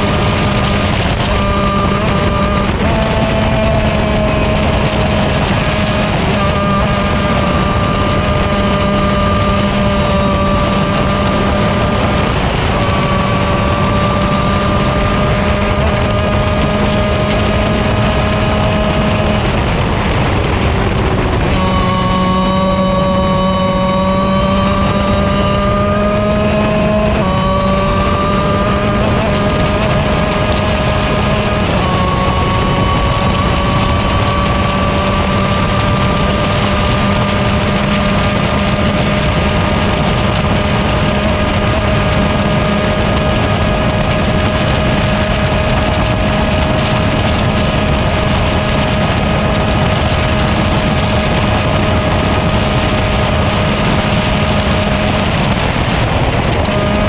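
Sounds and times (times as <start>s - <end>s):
kart engine at full throttle: 0.0s - 57.0s
wind rushing: 0.0s - 57.0s.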